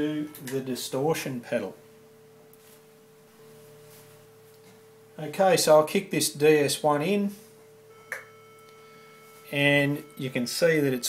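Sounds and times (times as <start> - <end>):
sine wave test tone: 0.0 - 11.0.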